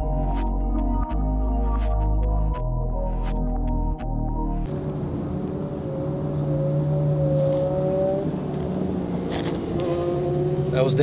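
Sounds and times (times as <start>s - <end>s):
music: 0.0s - 4.7s
tyre and road noise: 4.7s - 11.0s.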